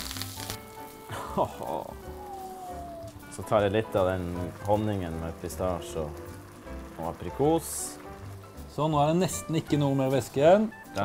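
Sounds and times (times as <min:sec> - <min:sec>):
patties sizzling in frying pan: 0:00.0 - 0:11.0.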